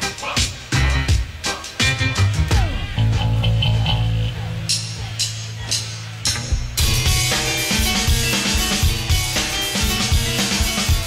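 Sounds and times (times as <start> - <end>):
drum kit: 0.0 - 11.0
bass guitar low notes: 1.9 - 9.3.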